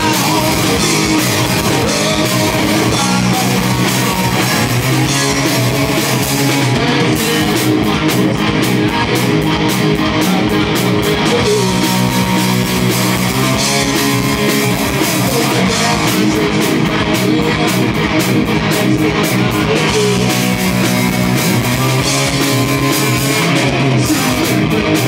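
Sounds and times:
drum kit: 0.0 - 25.0
electric bass: 0.0 - 25.0
electric guitars: 0.0 - 25.0.

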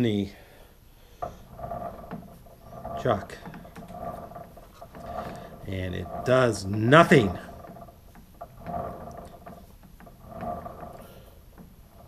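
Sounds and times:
lathe chuck whirring: 1.1 - 12.0
lathe chuck click: 1.2 - 12.0.

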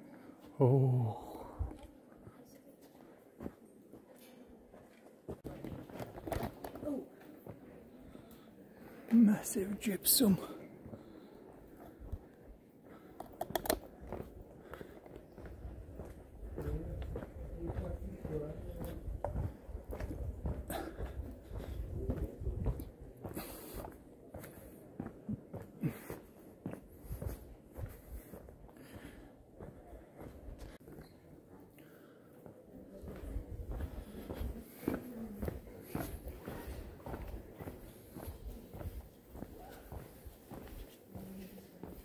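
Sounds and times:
faint voices: 0.0 - 42.0
footsteps: 10.8 - 31.6, 32.5 - 42.0
camera handling noise: 13.2 - 13.9.

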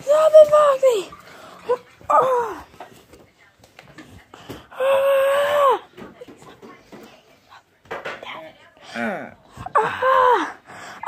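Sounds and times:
shuffling and handling noise: 0.0 - 4.7.

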